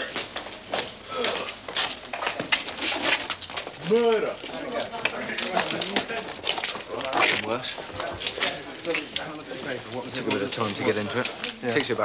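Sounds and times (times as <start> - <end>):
chatter of boys' voices: 3.8 - 12.0.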